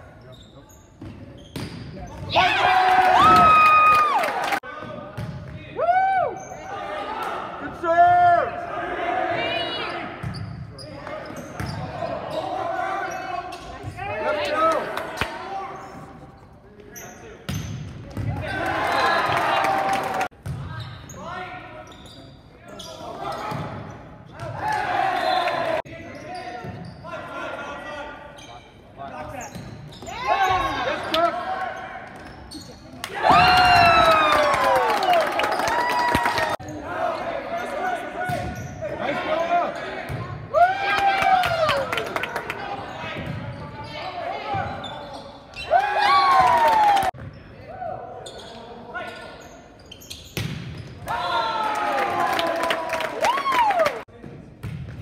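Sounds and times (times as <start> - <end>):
sneakers squeaking on wooden floor: 0.2 - 2.4, 9.8 - 14.0, 20.5 - 24.5, 26.1 - 27.1, 28.3 - 33.0, 38.4 - 38.9, 43.0 - 45.7, 48.2 - 51.0
team shouting and cheering: 2.3 - 4.7, 5.6 - 10.2, 13.9 - 15.9, 24.4 - 25.9, 33.0 - 43.2, 45.7 - 48.1, 51.0 - 54.1.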